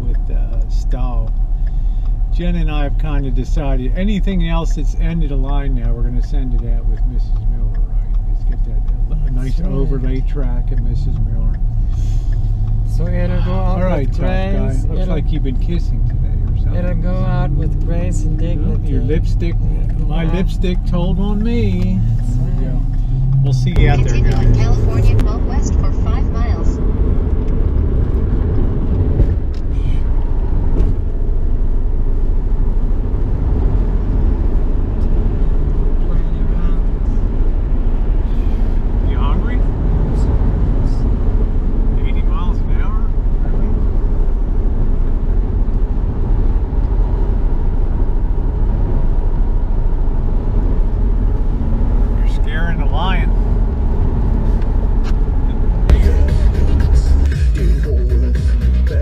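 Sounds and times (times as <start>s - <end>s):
road and engine noise in car: 0.0s - 59.0s.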